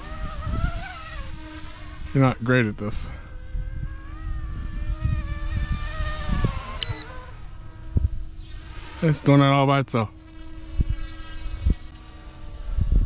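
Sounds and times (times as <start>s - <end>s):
wind on microphone: 0.0s - 9.0s, 10.5s - 13.0s
rc helicopter motor whine: 0.0s - 13.0s
short high beep: 6.8s - 7.1s.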